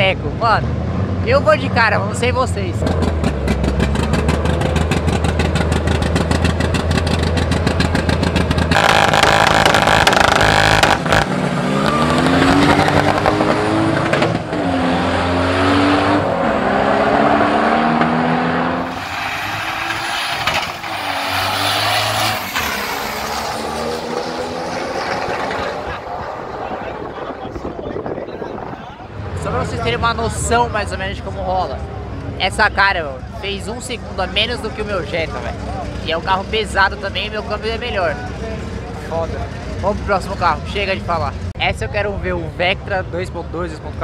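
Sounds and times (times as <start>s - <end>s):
race car engines revving: 0.0s - 44.0s.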